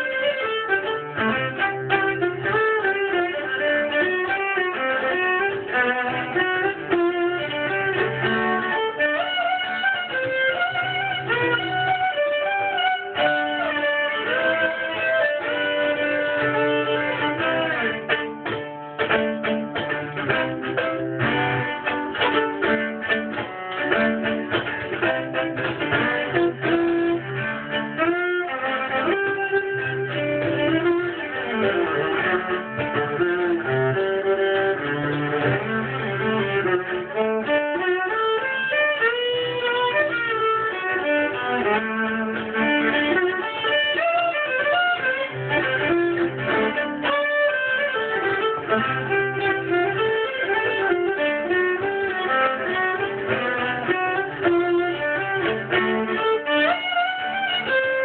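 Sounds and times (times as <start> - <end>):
solo viola bowed: 0.0 - 58.0.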